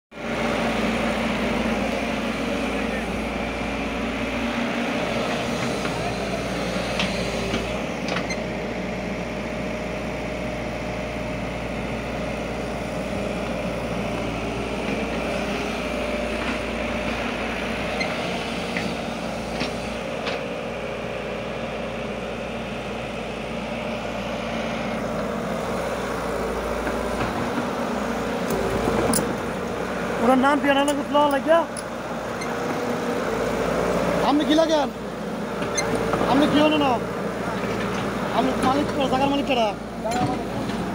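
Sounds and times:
excavator diesel engine running: 0:00.2 - 0:40.9.

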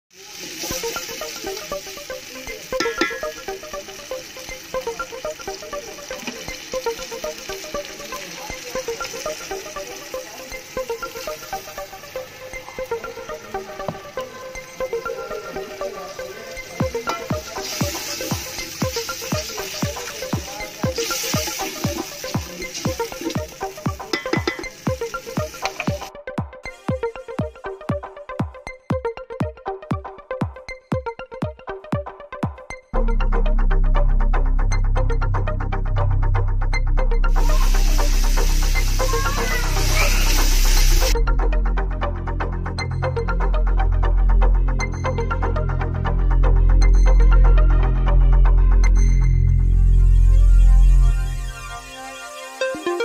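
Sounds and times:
faint sizzle of frying: 0:00.1 - 0:26.1, 0:37.3 - 0:41.2
background music melody: 0:00.1 - 0:53.0
electronic drum beat: 0:02.8 - 0:03.8, 0:16.8 - 0:32.7.

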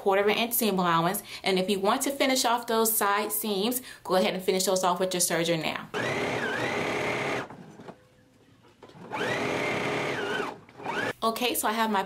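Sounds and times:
sewing machine motor whine: 0:06.0 - 0:08.0, 0:09.0 - 0:11.1.

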